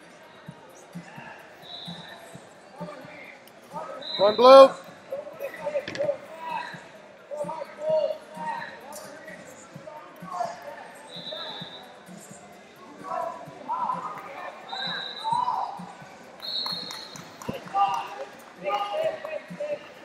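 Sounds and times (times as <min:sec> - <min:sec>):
voices calling out in a hall: 0:00.0 - 0:20.0.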